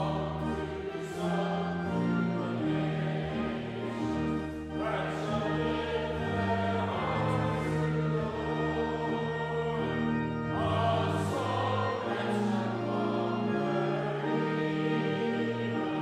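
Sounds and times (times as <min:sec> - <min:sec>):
congregation singing a hymn: 0:00.0 - 0:16.0
pipe organ chords: 0:00.0 - 0:16.0.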